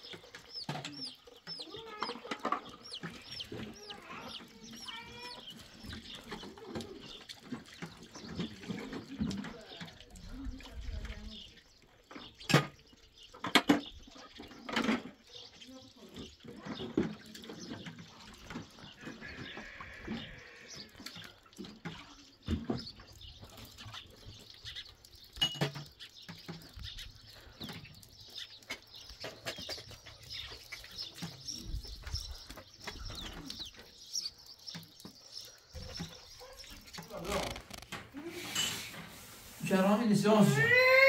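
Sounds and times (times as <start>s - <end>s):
water pouring and dripping: 0.0s - 41.0s
animal calls: 18.9s - 21.0s
dishes clinking: 25.4s - 25.8s.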